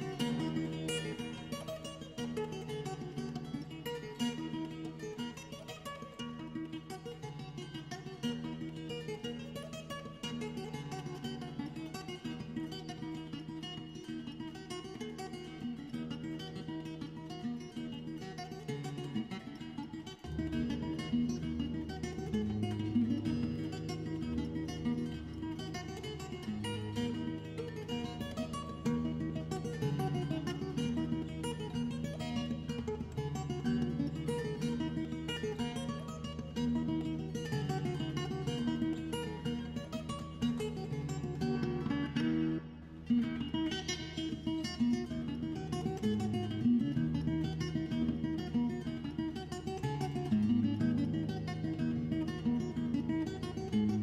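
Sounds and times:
fingerstyle acoustic guitar tune: 0.0 - 54.0.

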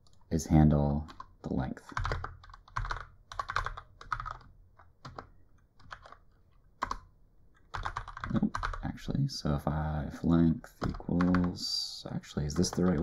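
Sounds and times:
typing on a computer keyboard: 1.1 - 8.9, 10.8 - 11.6, 12.5 - 13.0.

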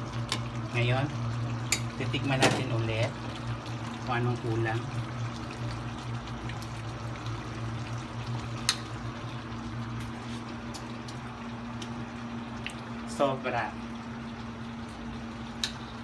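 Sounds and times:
gas burner hum: 0.0 - 16.0
stew bubbling in a wok: 0.0 - 16.0.

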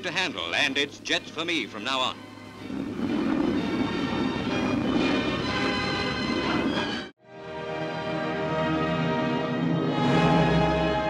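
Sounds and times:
newsreel soundtrack music: 0.0 - 11.0.

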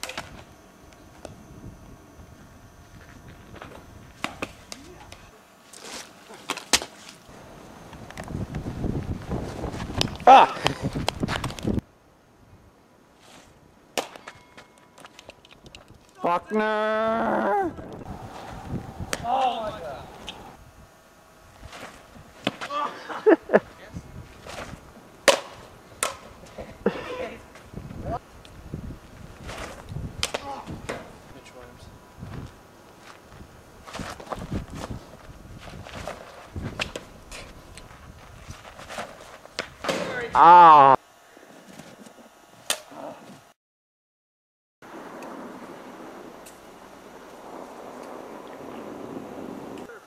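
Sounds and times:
bat hitting plastic ball: 14.0 - 15.1, 25.2 - 26.3, 30.2 - 31.1.

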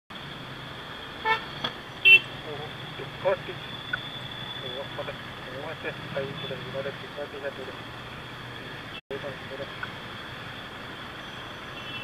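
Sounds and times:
idling engines hum: 0.1 - 12.0
vehicle horn toot: 1.2 - 2.3, 11.8 - 12.0.

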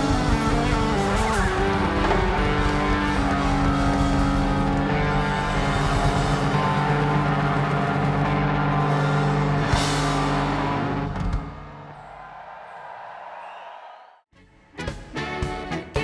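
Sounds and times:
rock band playing live: 0.0 - 11.8, 14.7 - 16.0.

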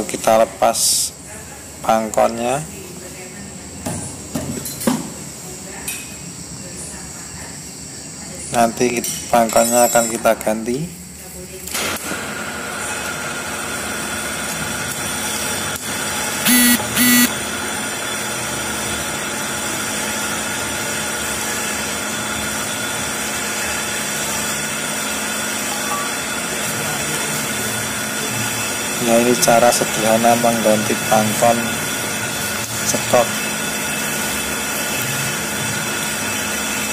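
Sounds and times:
short loud beeps: 16.5 - 17.3.

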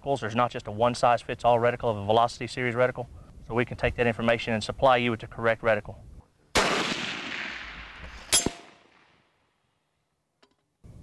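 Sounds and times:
rifle shot echoing: 6.6 - 9.2
bullet clanging on steel target: 8.3 - 8.8.

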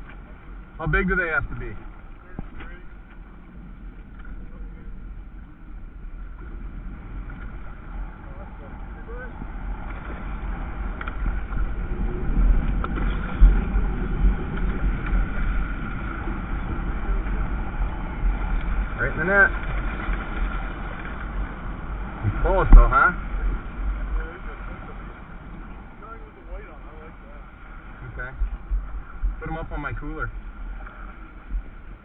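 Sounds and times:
wind rumbling on microphone: 0.0 - 32.0.

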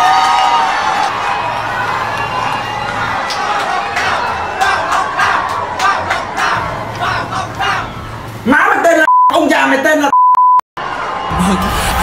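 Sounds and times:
censor bleep: 9.0 - 9.4, 10.1 - 10.6.

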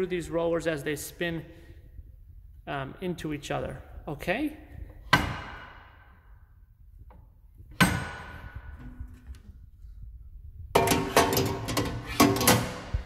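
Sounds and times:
clatter of metal knocks: 10.7 - 13.0
metal knock ringing: 10.8 - 12.8.

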